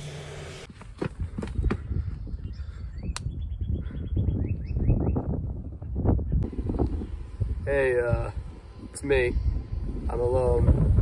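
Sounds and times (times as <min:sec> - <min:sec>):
wind rumble on microphone: 0:01.0 - 0:11.0.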